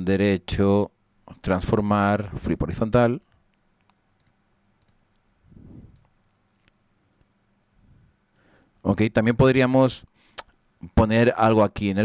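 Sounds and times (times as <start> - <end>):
faint computer mouse clicks: 3.2 - 5.3
short low sound: 5.5 - 6.0.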